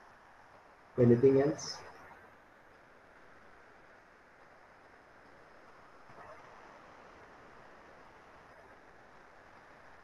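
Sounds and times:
faint microphone hiss: 0:00.0 - 0:10.0.

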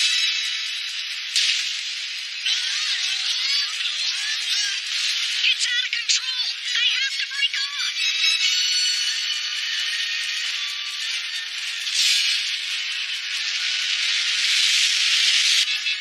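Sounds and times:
hissing rush of noise: 0:00.0 - 0:05.7, 0:08.8 - 0:15.8
faint music: 0:00.0 - 0:16.0.

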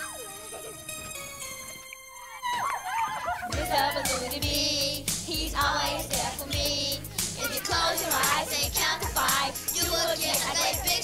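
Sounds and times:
theme music with held tones: 0:00.0 - 0:11.0.

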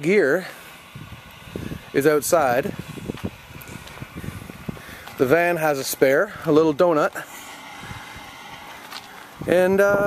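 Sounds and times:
man speaking: 0:00.0 - 0:00.6, 0:02.0 - 0:02.8, 0:05.2 - 0:07.3.

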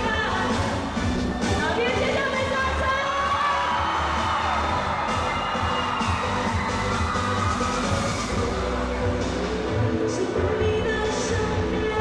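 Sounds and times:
live pop song over pa: 0:00.0 - 0:12.0
audience cheering: 0:02.8 - 0:08.6.

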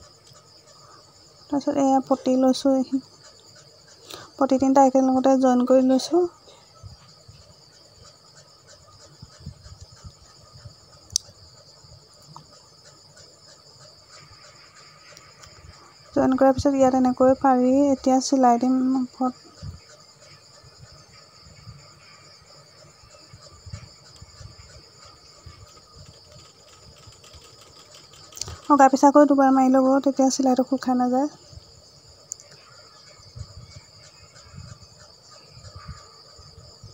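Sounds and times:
insects chirping: 0:00.0 - 0:36.9.

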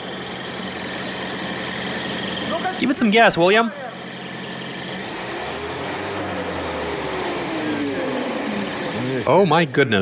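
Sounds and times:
car engine revving: 0:04.8 - 0:09.3.

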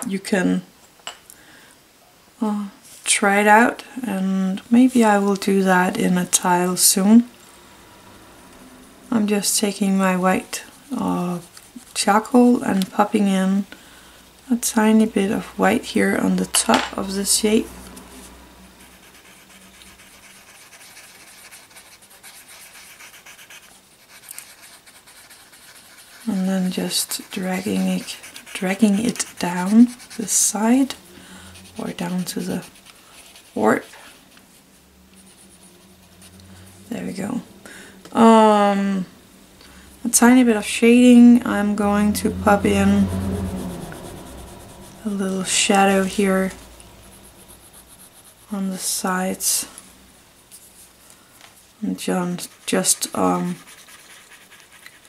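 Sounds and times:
paper stump rubbing on paper: 0:10.4 - 0:12.4, 0:18.2 - 0:36.4, 0:52.3 - 0:55.0.

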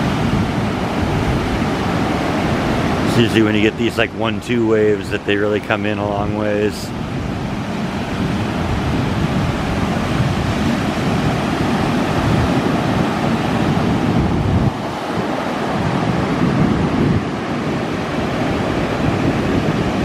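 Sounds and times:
surf breaking on beach: 0:00.0 - 0:20.0
wind buffeting microphone: 0:00.0 - 0:20.0.

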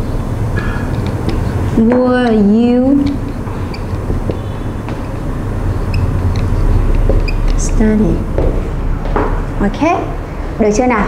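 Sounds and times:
marker strokes on a whiteboard: 0:01.0 - 0:08.0.

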